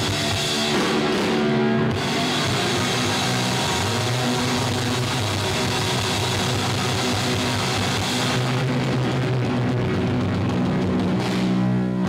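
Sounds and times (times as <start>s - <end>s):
punk rock band playing live: 0.0s - 12.0s.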